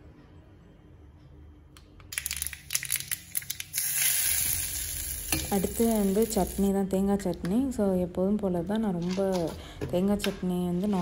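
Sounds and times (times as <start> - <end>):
seeds popping in hot oil: 2.1 - 6.7
oil sizzling: 2.4 - 6.8.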